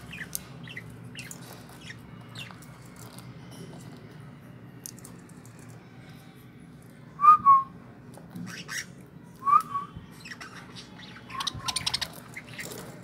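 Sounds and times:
budgies squawking and chattering: 0:00.0 - 0:02.6, 0:08.4 - 0:09.0, 0:10.2 - 0:13.0.

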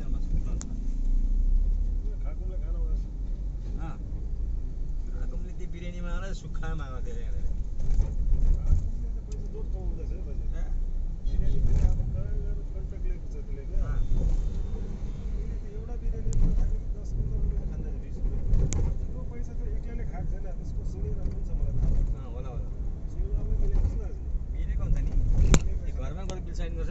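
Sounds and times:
vehicle rumble on board: 0:00.0 - 0:26.9.

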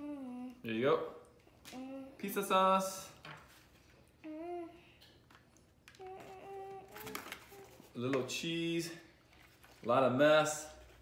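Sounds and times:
person humming: 0:00.0 - 0:00.6, 0:01.7 - 0:02.2, 0:04.2 - 0:04.9, 0:06.0 - 0:07.7.

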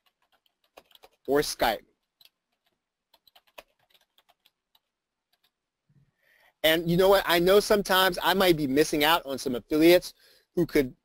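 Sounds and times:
faint keyboard keystrokes: 0:02.0 - 0:05.6.

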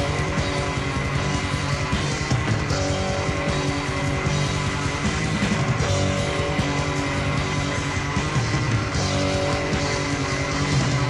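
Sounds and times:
bass guitar sustaining notes: 0:00.0 - 0:11.0
distorted electric guitars: 0:00.0 - 0:11.0
fast dense drumming: 0:00.0 - 0:11.0.

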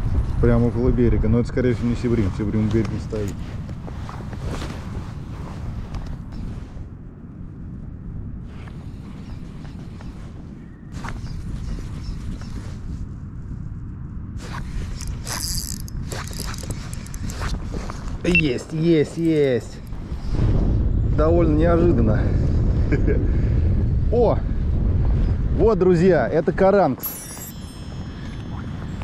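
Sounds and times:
fishing reel cranking: 0:15.0 - 0:17.5.

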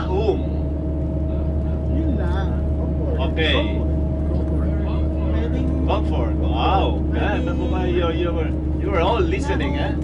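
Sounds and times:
road vehicle rumble: 0:00.0 - 0:10.0.

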